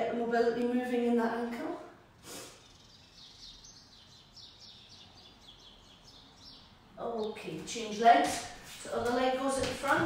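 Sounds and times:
bird chirping: 0:02.2 - 0:08.3.

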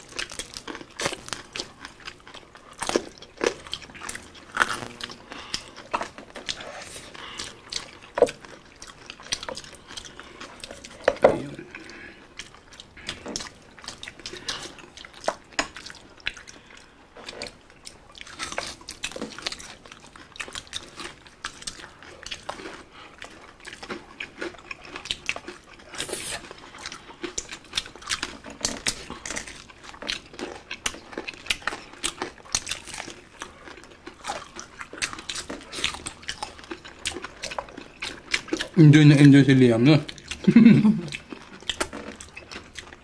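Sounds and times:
crunching and chewing: 0:00.0 - 0:43.0.

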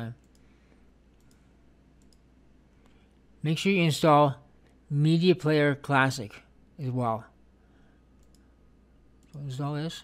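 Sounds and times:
low steady hum: 0:00.0 - 0:10.0
computer mouse clicks: 0:00.2 - 0:00.5, 0:01.1 - 0:03.0, 0:08.2 - 0:08.5, 0:09.2 - 0:09.5.

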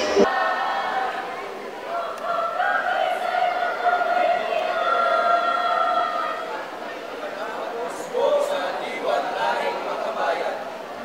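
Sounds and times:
young voices reading in unison: 0:00.2 - 0:10.0.

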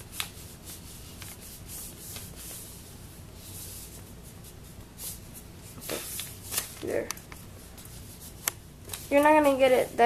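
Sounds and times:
paper rustling and rubbing: 0:00.0 - 0:10.0.

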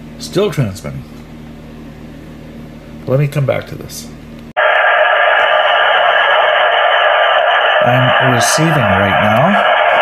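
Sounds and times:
electrical hum with faint hiss: 0:00.0 - 0:10.0.

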